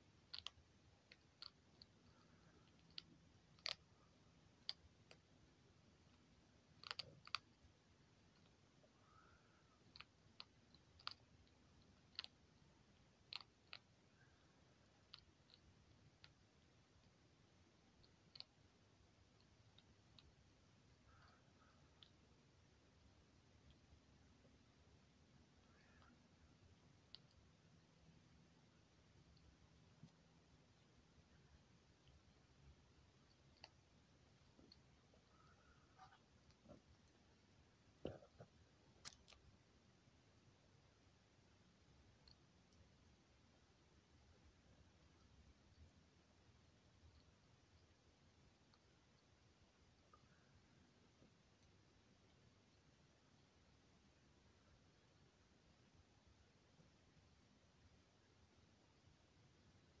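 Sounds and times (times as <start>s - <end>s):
animal nibbling kibble clicks: 0.3s - 3.9s, 6.7s - 7.6s, 9.8s - 12.4s, 13.0s - 13.9s.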